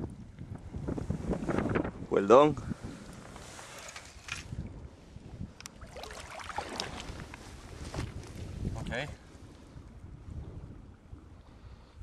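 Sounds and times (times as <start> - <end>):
wind buffeting microphone: 0.0 - 12.0
flowing river: 2.8 - 8.5
splashes wading over river stones: 5.7 - 7.4.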